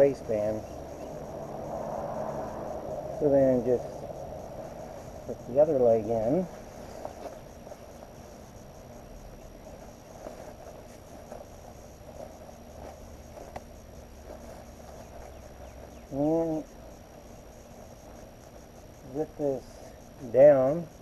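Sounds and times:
insects chirring: 0.0s - 21.0s.

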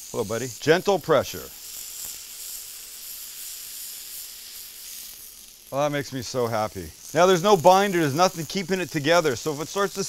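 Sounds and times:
meat sizzling on a griddle: 0.0s - 10.0s.

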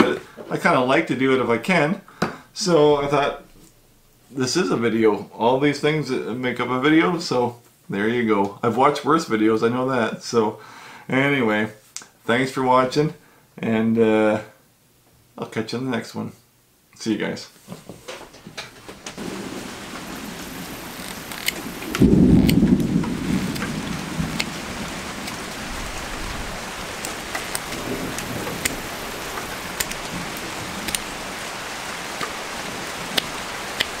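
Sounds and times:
steady rain: 19.0s - 34.0s
low rumble of thunder: 19.2s - 31.6s
sharp ticks: 20.9s - 24.6s, 25.2s - 25.5s, 27.0s - 30.0s, 30.8s - 31.1s, 33.1s - 34.0s.

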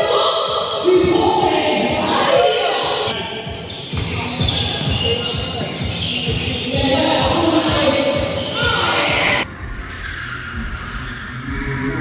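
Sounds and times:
voices: 0.0s - 9.5s
basketball bouncing on court: 2.2s - 9.3s.

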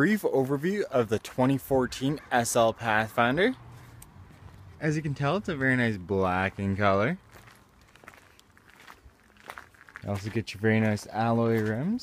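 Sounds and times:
faint footsteps on asphalt: 0.1s - 12.0s.

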